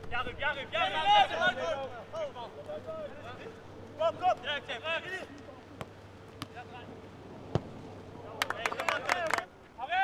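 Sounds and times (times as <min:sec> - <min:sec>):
players shouting: 0:00.1 - 0:05.7
football kicked thud: 0:07.5 - 0:07.8.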